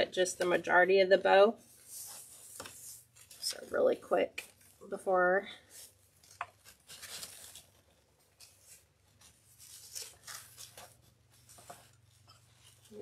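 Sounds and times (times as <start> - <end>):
ribbon rustling and crinkling: 1.6 - 3.8, 5.6 - 13.0.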